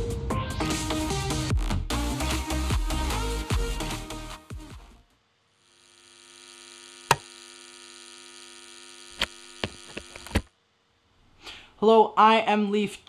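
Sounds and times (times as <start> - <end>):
electronic hum of stacked tones: 5.0 - 10.6.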